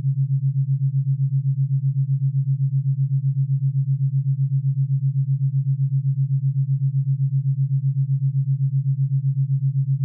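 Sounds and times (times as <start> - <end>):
pulsing low sine tone: 0.0 - 10.0.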